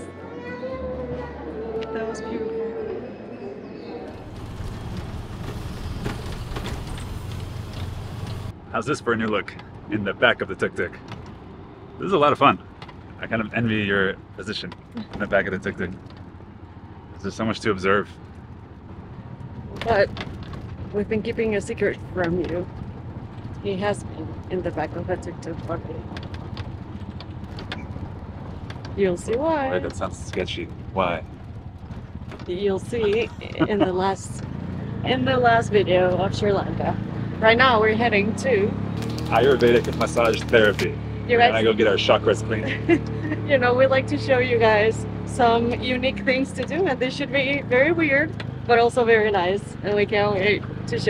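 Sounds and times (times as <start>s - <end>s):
road and wind noise: 3.8s - 51.0s
auto-rickshaw engine running: 4.1s - 51.0s
light rattles: 18.1s - 34.9s.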